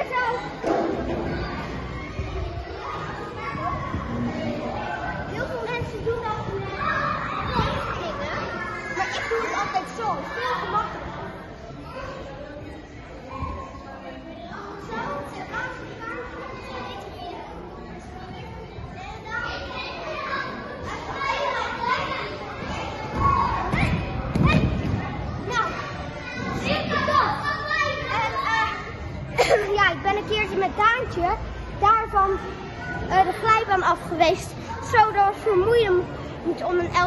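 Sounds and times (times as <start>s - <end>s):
children's voices and chatter: 0.0s - 37.0s.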